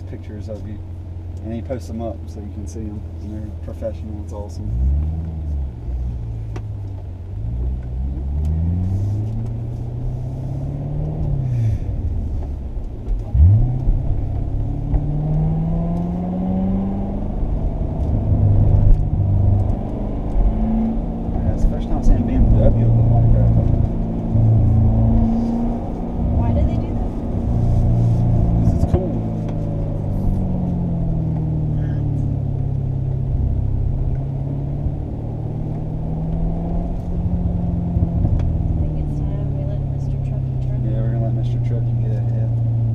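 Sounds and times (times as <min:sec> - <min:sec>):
car engine revving: 0:00.0 - 0:42.9.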